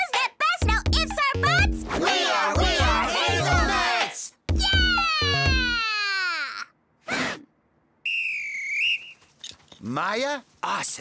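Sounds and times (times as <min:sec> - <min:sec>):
falling wail: 0:04.6 - 0:06.6
whistle blast: 0:08.0 - 0:09.3.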